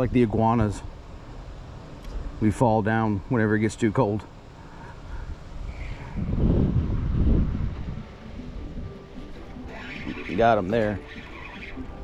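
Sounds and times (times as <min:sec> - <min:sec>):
wind buffeting microphone: 0:05.1 - 0:12.0.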